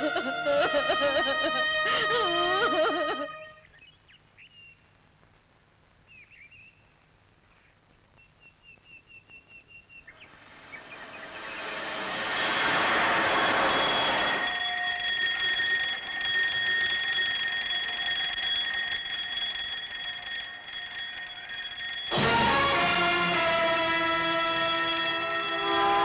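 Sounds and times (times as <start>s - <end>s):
train horn: 0.0s - 3.6s, 22.1s - 26.0s
bird chirping: 3.7s - 4.8s, 6.1s - 11.7s
train rushing rumble: 10.3s - 16.6s.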